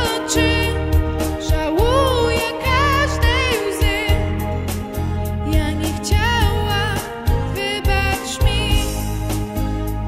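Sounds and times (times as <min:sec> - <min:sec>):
girl singing: 0:00.0 - 0:00.8, 0:01.4 - 0:04.2
backing track with steady beat: 0:00.0 - 0:10.0.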